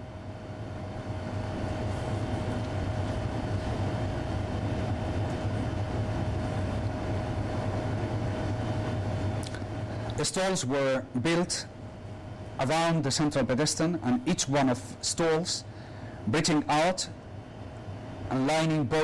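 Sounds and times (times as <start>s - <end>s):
low mechanical rumble: 0.0s - 19.0s
mid-pitched hum: 0.0s - 19.0s.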